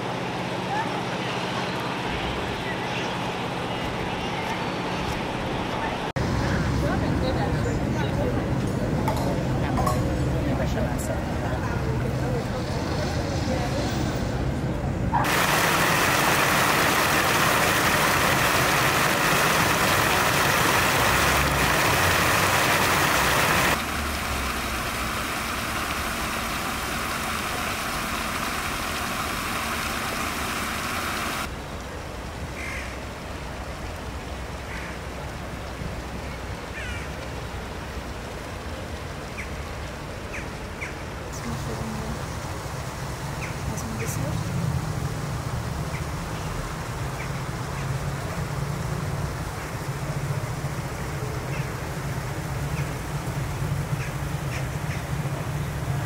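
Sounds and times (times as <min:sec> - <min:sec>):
outdoor ambience: 0:00.0 - 0:56.0
steady rushing noise: 0:12.8 - 0:27.4.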